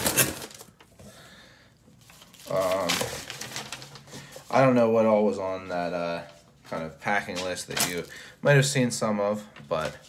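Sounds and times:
tissue paper rustling: 0:02.0 - 0:05.0.

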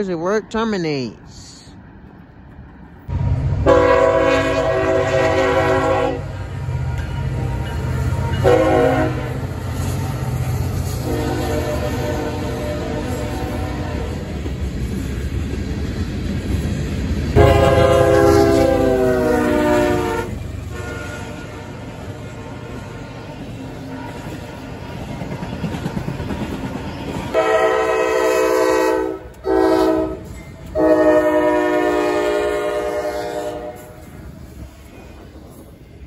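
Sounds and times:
train rumbling: 0:00.0 - 0:36.0
train horn blasts: 0:03.6 - 0:09.5, 0:10.9 - 0:14.3, 0:17.4 - 0:23.1, 0:23.8 - 0:25.0, 0:27.3 - 0:34.0.

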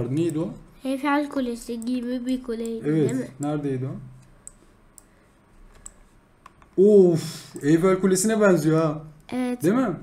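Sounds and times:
faint room noise: 0:00.0 - 0:10.0
computer mouse clicking: 0:01.6 - 0:02.8, 0:04.2 - 0:06.8.

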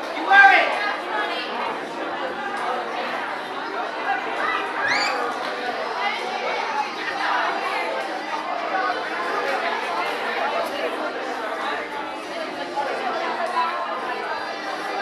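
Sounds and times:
indistinct chatter of people: 0:00.0 - 0:15.0.

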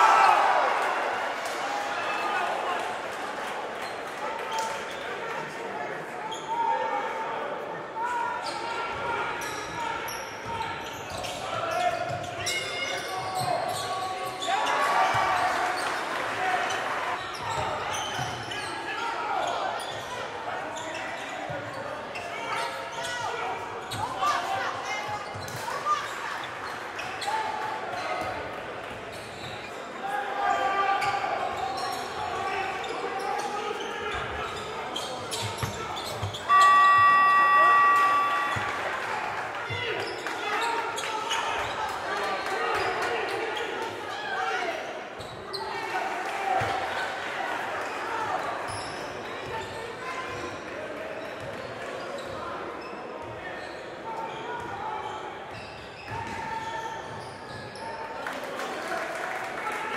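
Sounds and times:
players and spectators voices: 0:00.0 - 0:59.9
loud electronic buzzer: 0:36.4 - 0:38.9.

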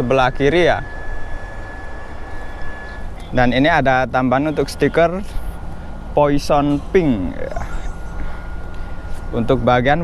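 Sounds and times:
faint high whine: 0:00.0 - 0:10.0
low outdoor rumble: 0:00.0 - 0:10.0.

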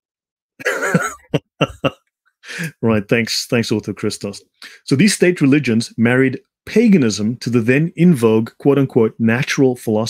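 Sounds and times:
man clearing his throat: 0:00.6 - 0:02.0
man coughing: 0:00.6 - 0:02.8.

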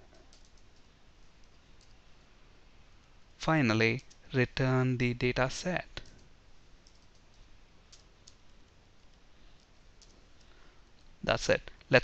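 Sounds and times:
keyboard typing: 0:00.0 - 0:00.8, 0:06.8 - 0:10.5
room hiss: 0:00.0 - 0:12.0.

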